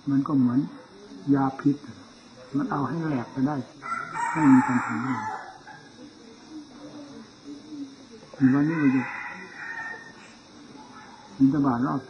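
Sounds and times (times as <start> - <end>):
man speaking: 0.0 - 3.7, 11.4 - 12.0
rooster crowing: 3.5 - 6.0, 8.3 - 11.3.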